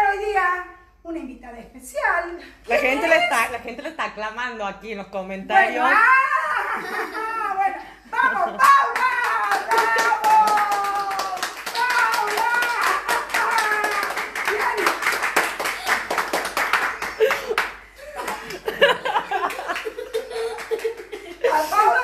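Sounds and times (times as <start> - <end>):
hands clapping rhythmically: 8.5 - 21.6.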